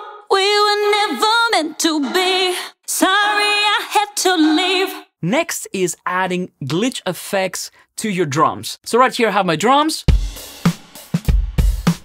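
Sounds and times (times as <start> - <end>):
person singing with reverb: 0.0 - 5.1.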